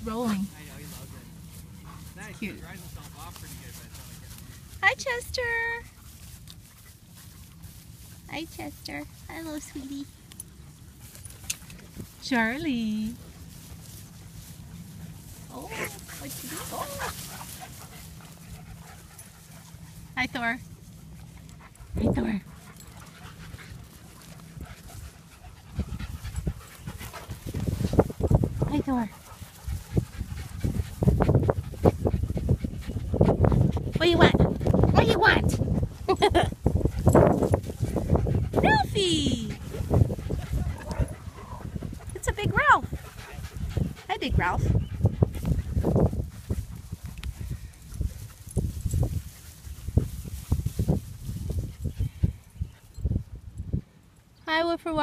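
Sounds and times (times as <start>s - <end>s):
rustling grass: 0.0s - 53.4s
footsteps in long grass: 0.2s - 34.9s, 45.0s - 52.5s
dog panting: 13.0s - 20.2s, 21.1s - 36.1s, 36.8s - 48.4s.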